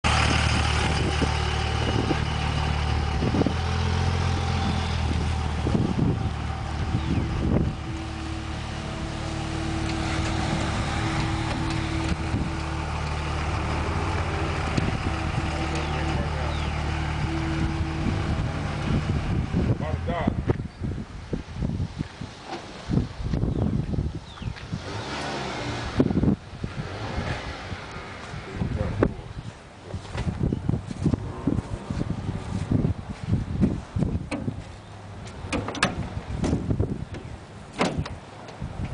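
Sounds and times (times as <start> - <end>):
truck engine idling: 0.0 - 21.8
wind buffeting microphone: 0.1 - 38.9
steady higher tone: 6.6 - 19.8.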